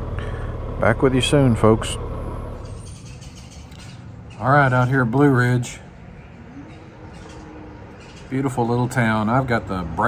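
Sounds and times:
motorcycle engine idling: 0.0s - 4.8s.

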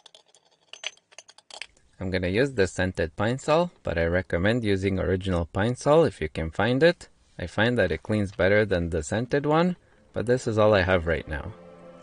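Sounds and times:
metal parts clinking in steel tank: 0.0s - 1.8s.

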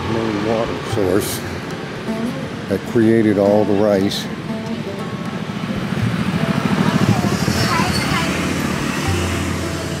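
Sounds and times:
vehicle engine running: 0.0s - 10.0s.

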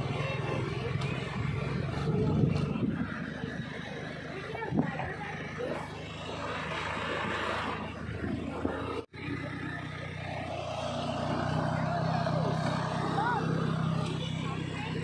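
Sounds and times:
engine hum: 0.0s - 15.0s
faint voices: 0.0s - 15.0s
road noise on gravel: 0.0s - 15.0s.

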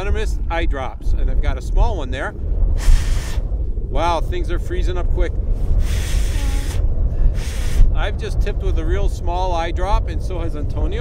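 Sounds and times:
wind rumble on microphone: 0.0s - 11.0s
man blowing breath into hands: 2.8s - 3.5s, 5.6s - 7.9s.

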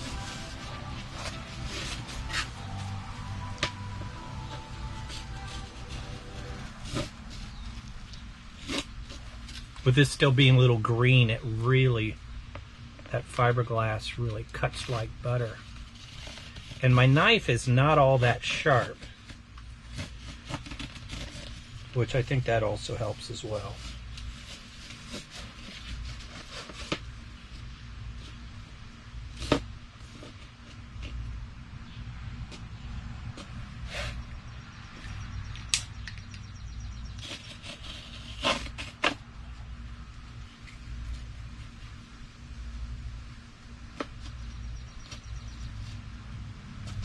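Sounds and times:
steady low hum: 0.0s - 47.0s
knife scratching through cloth: 37.2s - 39.2s.

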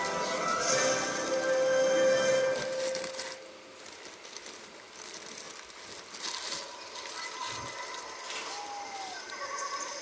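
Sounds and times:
paper wrapper crinkling: 0.0s - 10.0s.

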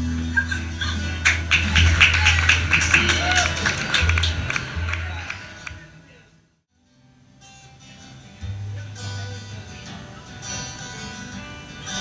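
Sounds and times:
upright double bass: 0.0s - 5.8s
acoustic rhythm guitar: 0.0s - 6.0s, 6.8s - 12.0s.

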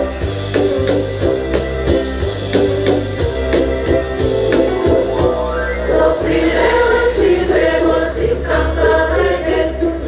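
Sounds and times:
amplified bass accompaniment: 0.0s - 10.0s
drum hit: 2.6s - 5.7s
choir singing into microphones: 5.7s - 10.0s.

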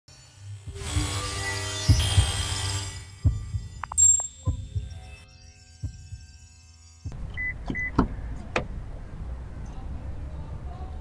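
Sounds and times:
deep heartbeat-like thumps: 1.9s - 2.5s, 3.2s - 5.1s, 5.8s - 6.3s.

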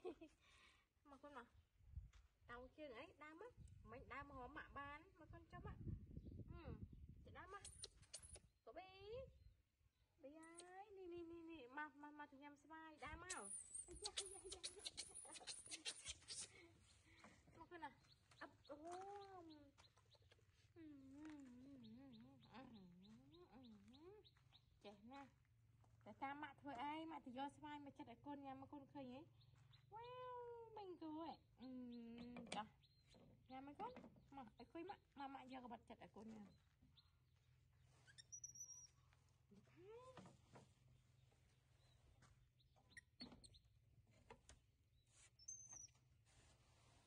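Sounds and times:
baby monkey squeaking: 7.5s - 8.5s, 13.1s - 16.5s, 38.0s - 39.0s, 42.9s - 43.6s, 45.4s - 45.9s
faint high-pitched chirp: 7.5s - 8.6s, 13.0s - 24.7s, 36.4s - 39.3s, 41.3s - 43.8s, 45.0s - 46.2s.

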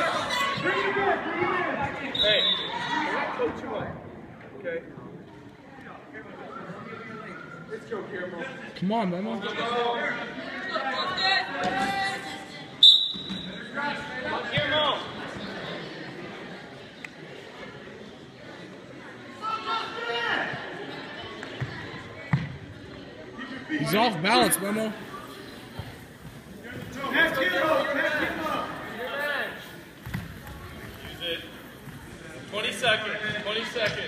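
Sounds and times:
referee whistle blast: 2.1s - 2.8s, 12.8s - 13.6s.

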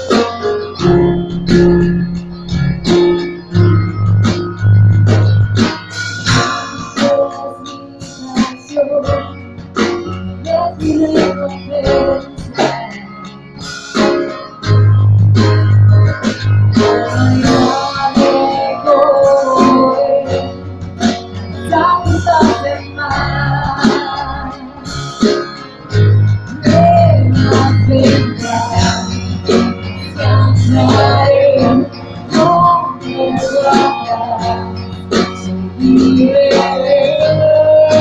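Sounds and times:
acoustic guitar strumming: 0.0s - 38.0s
sustained keyboard chords: 0.0s - 38.0s
worship band playing: 0.0s - 38.0s
deep bass note: 0.8s - 5.6s
women singing through a pa: 17.1s - 20.4s, 30.0s - 34.8s, 35.8s - 38.0s.

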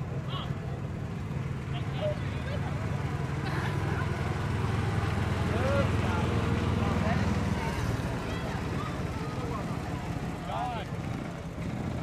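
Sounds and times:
golf cart motor rumble: 0.0s - 12.0s.

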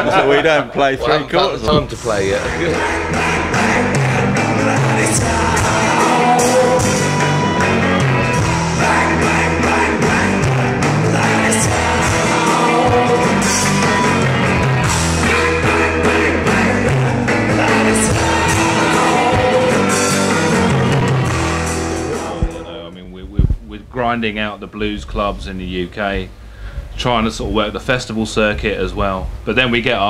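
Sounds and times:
man singing: 1.1s - 23.1s
blues-rock band playing: 1.9s - 22.8s.

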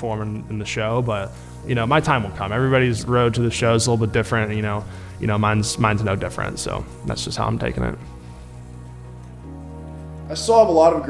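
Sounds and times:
background music with low held notes: 0.0s - 11.0s.

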